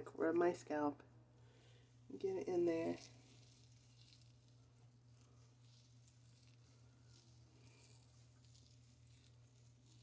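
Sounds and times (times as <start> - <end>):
steady low hum: 0.0 - 10.0
fingers squishing through wet hair: 2.2 - 10.0.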